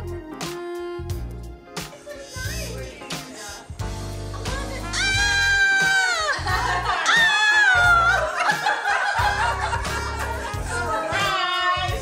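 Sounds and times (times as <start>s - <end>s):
music with bass beat: 3.8s - 8.4s, 9.2s - 12.0s
woman squealing: 4.9s - 8.3s.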